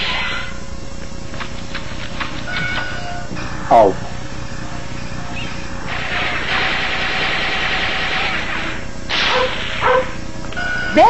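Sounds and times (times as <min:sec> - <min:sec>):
steady low background: 0:00.5 - 0:06.7
cartoon hissing noise: 0:09.1 - 0:10.0.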